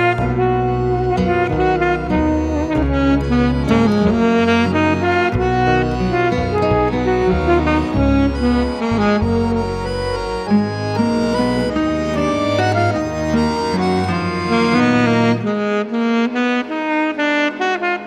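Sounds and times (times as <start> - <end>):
low bass line: 0.0 - 15.7
accordion: 0.0 - 18.0
saxophone: 0.0 - 18.0.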